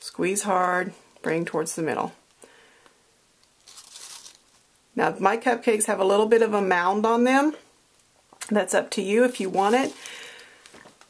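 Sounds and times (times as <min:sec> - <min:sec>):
piping bag crinkling: 0:03.4 - 0:04.7.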